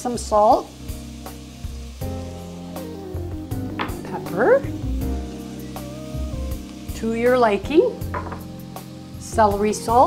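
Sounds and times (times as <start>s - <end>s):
background music with held notes: 0.0s - 10.0s
vegetables sizzling in a pot: 0.0s - 10.0s.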